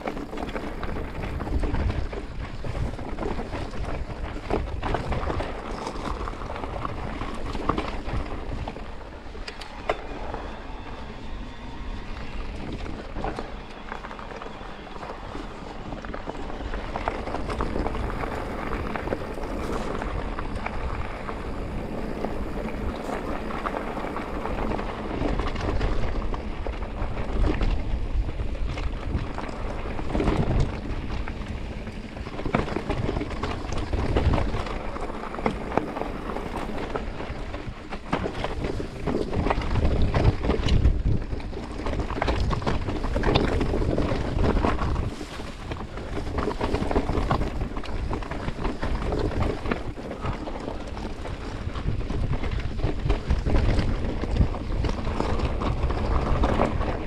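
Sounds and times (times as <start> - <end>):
bike knocking and rattling: 0.0 - 57.0
tyres crunching on gravel: 0.0 - 57.0
wind rumble on microphone: 0.0 - 57.0.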